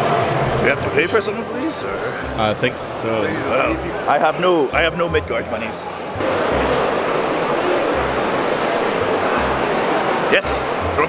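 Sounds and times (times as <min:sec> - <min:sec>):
crowd babble: 0:00.0 - 0:11.0.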